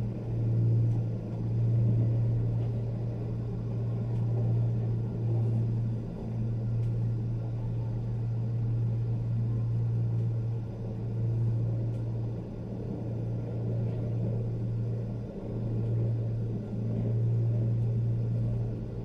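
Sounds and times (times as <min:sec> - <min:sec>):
gondola cabin rumbling hum: 0:00.0 - 0:19.0.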